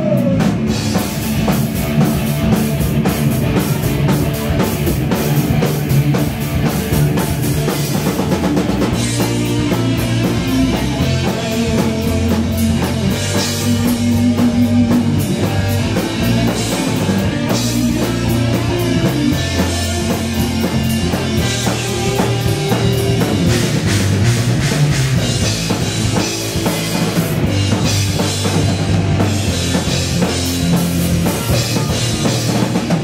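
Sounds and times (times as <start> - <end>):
heavy metal band playing live: 0.0 - 33.0.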